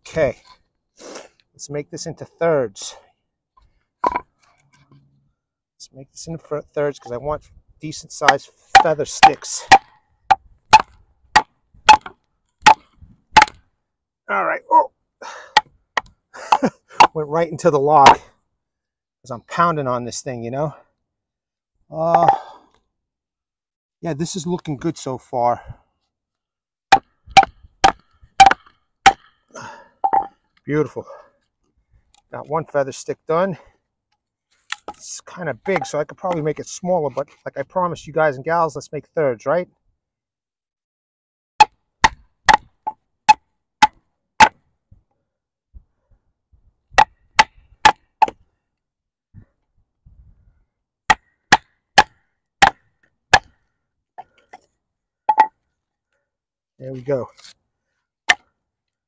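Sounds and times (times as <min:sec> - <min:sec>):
wooden baton knocking knife: 0:08.8 - 0:09.8, 0:35.7 - 0:36.0, 0:55.3 - 0:55.5.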